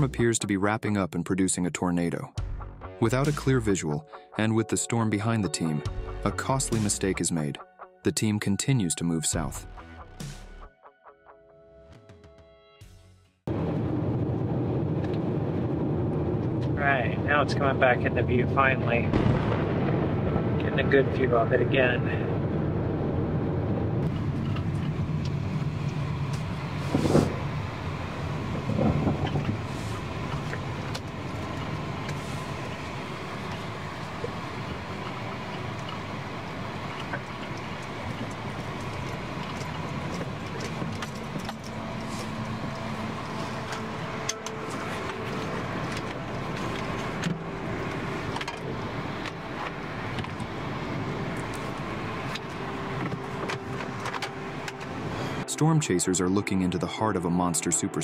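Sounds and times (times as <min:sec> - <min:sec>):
road and engine noise in car: 0:13.5 - 0:19.1, 0:20.0 - 0:56.5.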